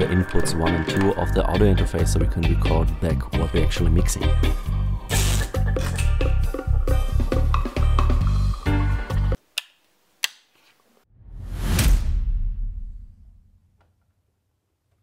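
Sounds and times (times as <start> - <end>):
dub reggae music with heavy bassline: 0.0 - 9.4
whoosh: 11.1 - 13.7.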